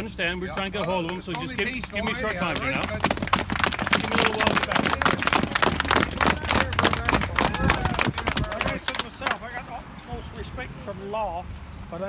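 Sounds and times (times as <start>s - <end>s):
people talking outdoors: 0.0s - 12.0s.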